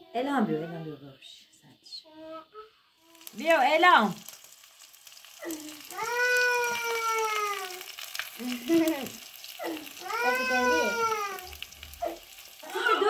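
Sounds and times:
faint crackle: 3.0s - 13.0s
cat meowing: 9.6s - 12.2s.

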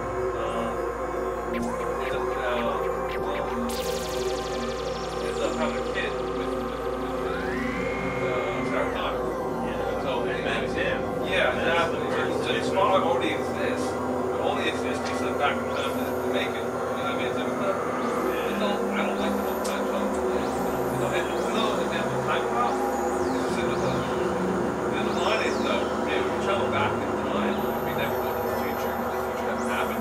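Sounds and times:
held synthesizer drone tones: 0.0s - 30.0s
falling high whistling sweeps: 2.2s - 11.5s.

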